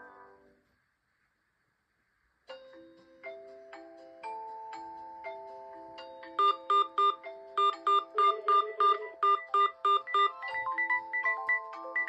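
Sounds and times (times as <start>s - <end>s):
quicker ringtone melody: 2.5s - 12.0s
slow chiming phone melody: 2.5s - 12.0s
fast repeated beeps: 6.4s - 12.0s.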